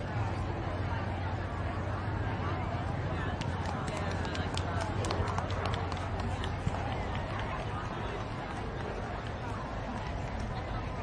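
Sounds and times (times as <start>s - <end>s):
low chatter of spectators: 0.0s - 11.0s.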